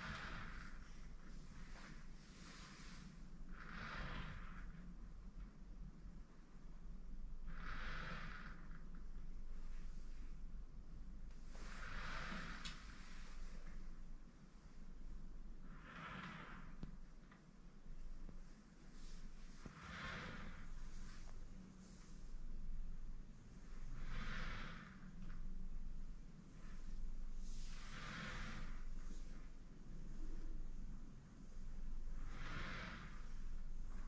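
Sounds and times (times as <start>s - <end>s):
slow quiet breathing: 0.0s - 6.5s, 7.2s - 34.0s
low steady hum: 0.0s - 34.0s.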